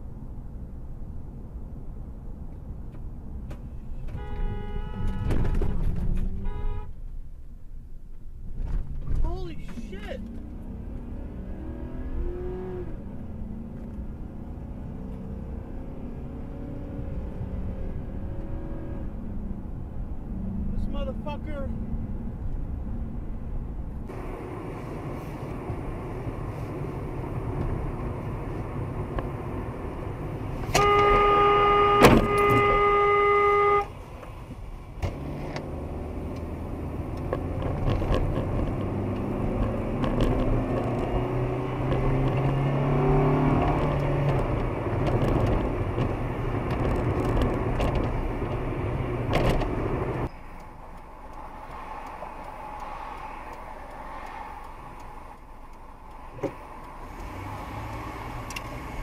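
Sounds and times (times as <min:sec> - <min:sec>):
car engine: 0:00.0 - 0:59.0
road noise: 0:00.0 - 0:59.0
car horn blaring: 0:04.1 - 0:07.0, 0:30.6 - 0:34.0.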